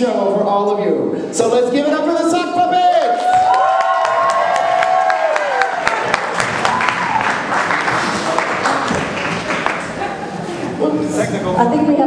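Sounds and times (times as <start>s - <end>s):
people cheering: 2.9s - 10.6s
audience applauding: 3.1s - 10.7s.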